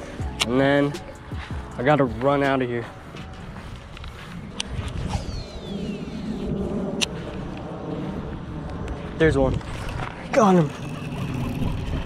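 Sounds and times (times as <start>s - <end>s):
wind rumbling on microphone: 3.3s - 12.0s
fishing reel spool whine: 9.8s - 12.0s.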